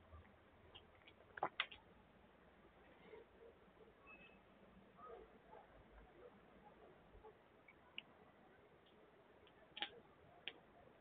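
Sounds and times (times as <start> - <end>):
faint sharp clicks: 8.8 - 10.7.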